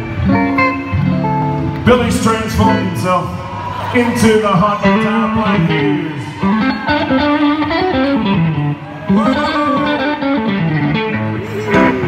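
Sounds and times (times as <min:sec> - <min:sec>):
electric guitar lead: 0:00.0 - 0:12.0
man's voice: 0:01.8 - 0:06.5, 0:09.1 - 0:10.4.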